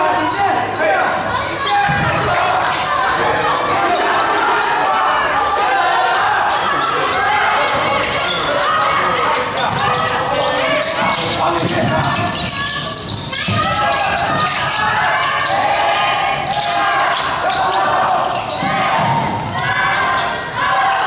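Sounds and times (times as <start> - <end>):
voices calling and shouting: 0.0 - 21.0.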